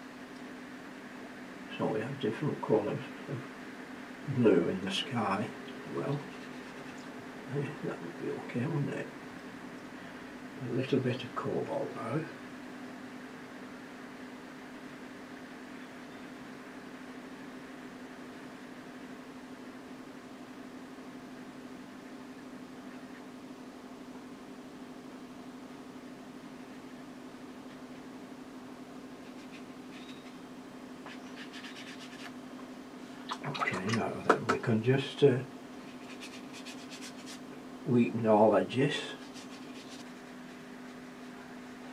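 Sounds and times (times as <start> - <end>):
brush strokes on paper: 29.2 - 30.4, 31.0 - 32.4, 35.8 - 37.5, 39.0 - 41.6.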